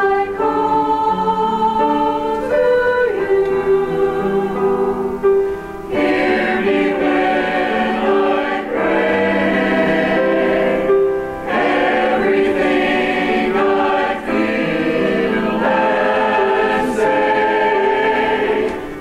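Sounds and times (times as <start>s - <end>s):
choir singing in harmony: 0.0s - 19.0s.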